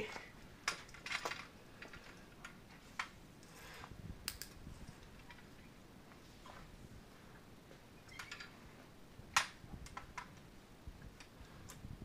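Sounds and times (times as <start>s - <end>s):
folding metal cart clicks and rattles: 0.6s - 2.6s.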